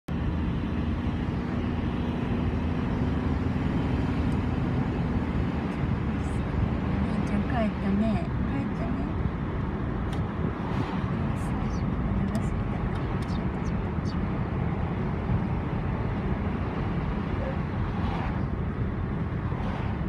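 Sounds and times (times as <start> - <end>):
wind and road noise: 0.1 - 20.0.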